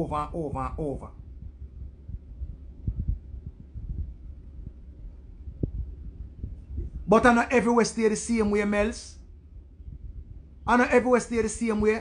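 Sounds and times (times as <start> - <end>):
low rumble: 0.0 - 7.6, 8.3 - 12.0.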